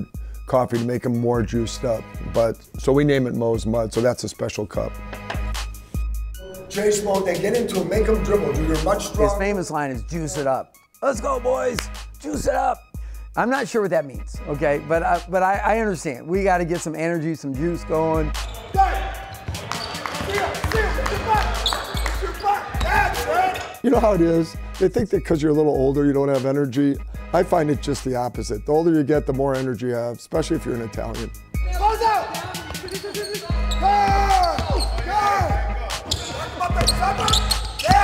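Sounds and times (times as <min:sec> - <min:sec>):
background music: 0:00.0 - 0:38.0
sneakers squeaking: 0:18.3 - 0:23.8, 0:32.2 - 0:38.0
people shouting: 0:18.6 - 0:19.4, 0:20.2 - 0:23.8, 0:31.7 - 0:38.0
basketballs bouncing on court: 0:19.3 - 0:23.3, 0:32.5 - 0:38.0
basketball bouncing: 0:36.1 - 0:38.0.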